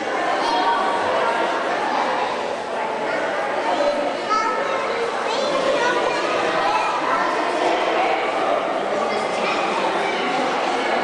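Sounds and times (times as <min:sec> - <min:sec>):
crowd hubbub in a large hall: 0:00.0 - 0:11.0.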